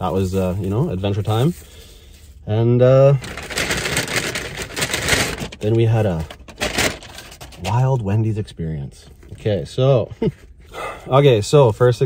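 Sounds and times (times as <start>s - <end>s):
paper bag crinkling: 3.0s - 7.8s.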